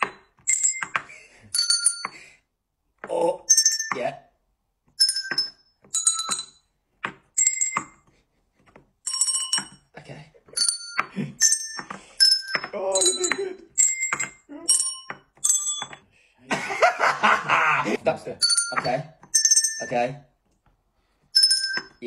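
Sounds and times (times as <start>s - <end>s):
tuned desk bells ringing: 0.0s - 2.5s, 3.2s - 4.4s, 5.0s - 8.1s, 9.0s - 16.1s, 18.4s - 20.4s, 21.0s - 22.0s
people laughing: 16.4s - 18.3s.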